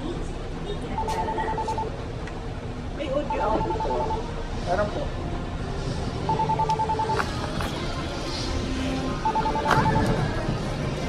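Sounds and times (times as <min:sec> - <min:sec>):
steady background hum: 0:00.0 - 0:11.0
rapid electronic beeping: 0:03.3 - 0:04.3, 0:06.3 - 0:07.2, 0:09.2 - 0:10.0.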